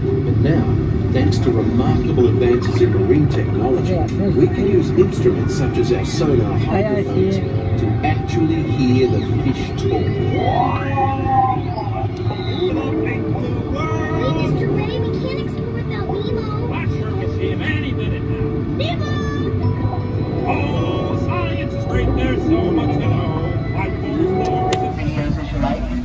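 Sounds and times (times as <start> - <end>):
music: 0.0 - 26.0
steady low rumble: 0.0 - 26.0.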